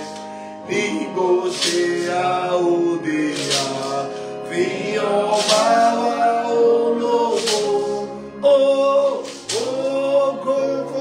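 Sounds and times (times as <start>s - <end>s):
man singing a hymn: 0.0s - 11.0s.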